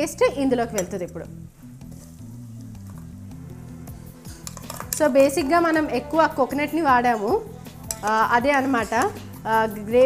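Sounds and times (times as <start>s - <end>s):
soft background music: 0.0s - 10.0s
steel spoon scraping bowl: 3.8s - 5.8s, 7.0s - 9.4s.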